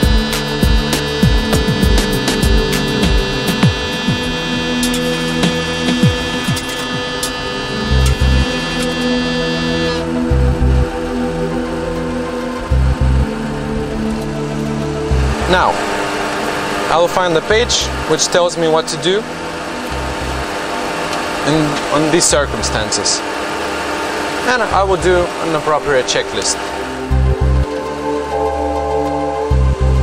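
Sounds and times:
engine rumble: 0:00.0 - 0:30.0
fire warning bell ringing: 0:00.0 - 0:30.0.

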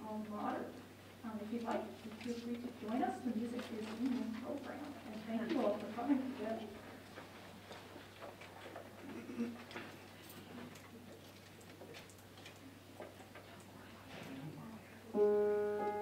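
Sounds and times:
faint clicks and rustles: 0:00.2 - 0:14.9
faint murmur of voices: 0:13.4 - 0:16.0.

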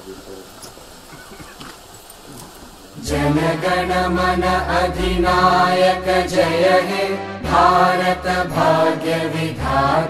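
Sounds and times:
faint audience movement: 0:00.0 - 0:03.1.

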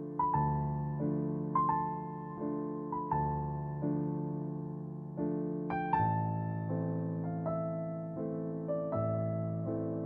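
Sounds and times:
slow soft keyboard music: 0:00.0 - 0:10.0.

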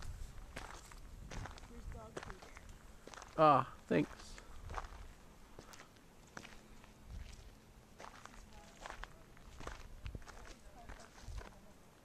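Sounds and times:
footsteps on gravel: 0:00.0 - 0:11.8.

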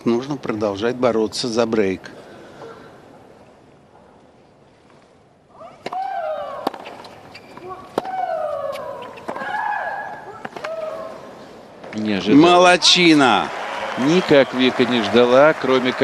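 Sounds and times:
racket striking tennis ball: 0:05.8 - 0:09.6.

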